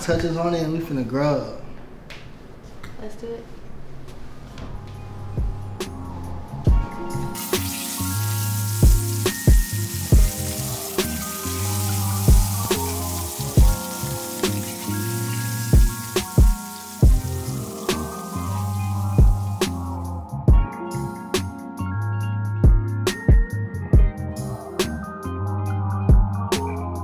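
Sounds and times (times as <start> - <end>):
music with steady beat and bass: 4.8 - 27.0
scallops sizzling in a hot pan: 7.4 - 20.0.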